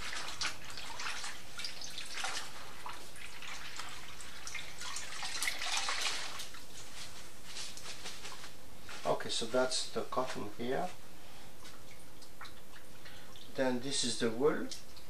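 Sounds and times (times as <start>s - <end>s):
water splashing into metal bowl: 0.0s - 6.6s.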